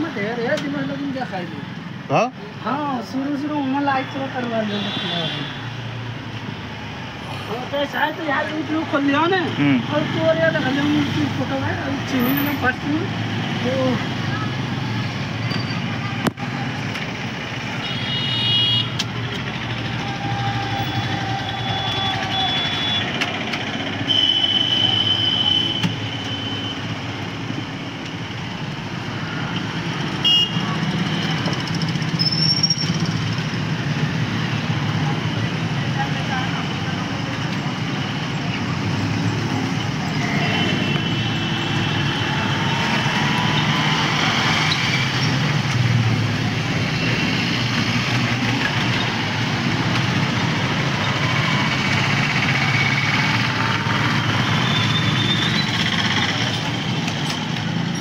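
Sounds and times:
street traffic: 0.0 - 58.0
motorcycles passing: 5.2 - 18.3, 26.8 - 58.0.

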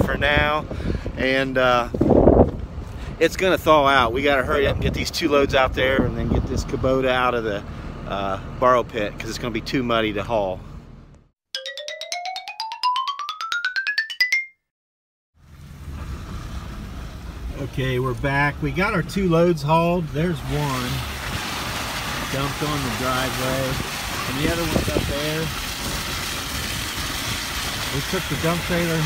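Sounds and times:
wind on microphone: 0.0 - 3.0
rising run of struck notes: 11.6 - 14.6
truck engine and tyres on gravel: 15.4 - 29.0.

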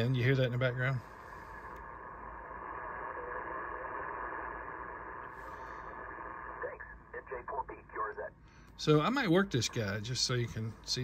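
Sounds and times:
radio receiver hiss: 0.0 - 9.0
faint choppy radio voice: 6.4 - 8.4.

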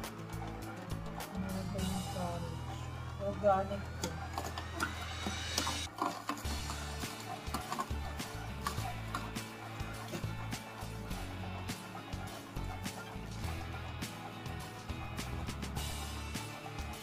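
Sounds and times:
juicer auger crushing carrot: 3.8 - 13.0.

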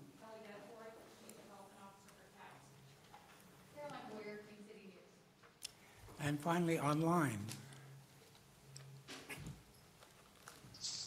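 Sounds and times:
brief hiss: 10.7 - 11.0.

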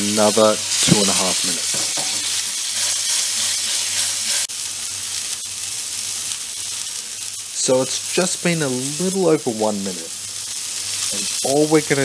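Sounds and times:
steak sizzling in a frying pan: 0.0 - 12.0.

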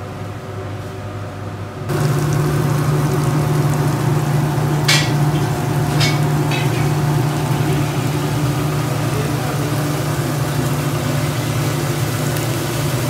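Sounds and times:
gas range low hum: 0.0 - 13.0
flatbread sizzling in oil: 1.9 - 13.0.

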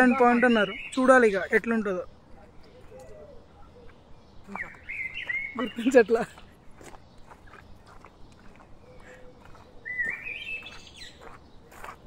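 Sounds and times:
bird singing: 0.0 - 12.0.

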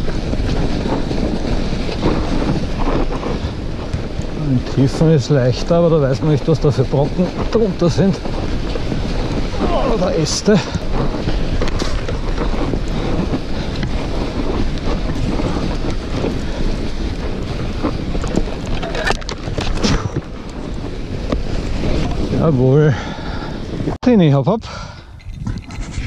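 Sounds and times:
tyres rolling through snow: 0.0 - 24.4
wind on microphone: 0.0 - 26.0.

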